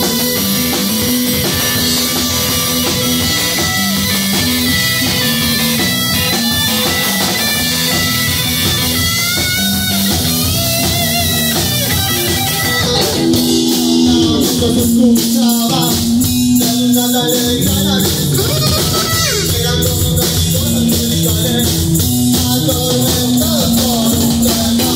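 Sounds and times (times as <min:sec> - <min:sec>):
drum kit and cymbals: 0:00.0 - 0:24.9
electric guitar: 0:00.0 - 0:24.9.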